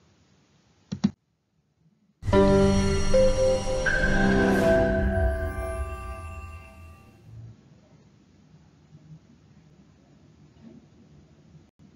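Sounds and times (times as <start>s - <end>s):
faint room hiss: 0.0s - 11.9s.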